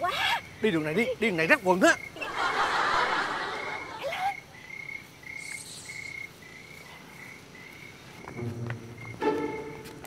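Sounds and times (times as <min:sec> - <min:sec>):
cricket chirping: 0:00.0 - 0:10.0.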